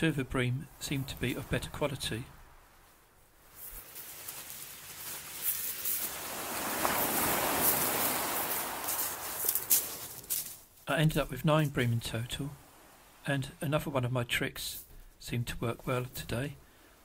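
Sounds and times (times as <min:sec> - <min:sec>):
wave washing up pebbles: 0:00.8 - 0:10.7, 0:11.6 - 0:13.3.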